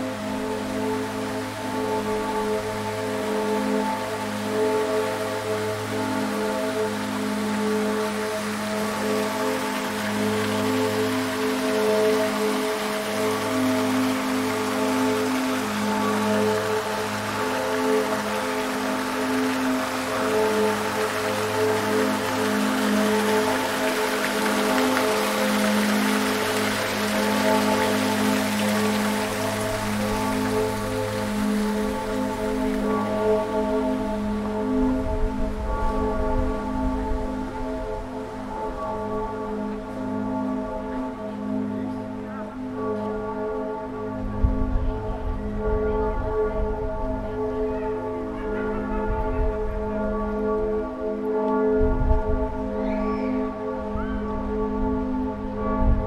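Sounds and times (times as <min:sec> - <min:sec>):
fountain water splashing: 0:00.0 - 0:43.2
music with long held chords: 0:00.0 - 0:56.0.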